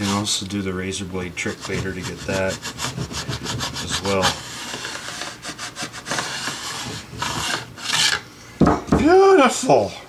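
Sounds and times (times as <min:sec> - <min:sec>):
file scraping metal frets: 0:00.0 - 0:00.4, 0:01.4 - 0:08.2.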